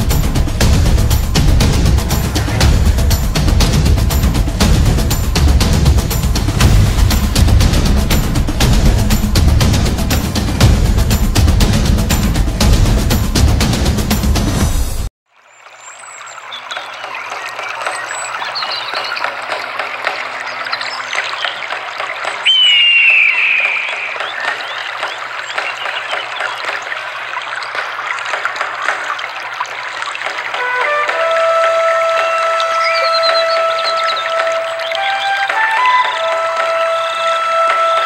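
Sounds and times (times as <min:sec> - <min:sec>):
rushing splashing water: 0:00.0 - 0:38.0
music with long held notes: 0:30.5 - 0:38.0.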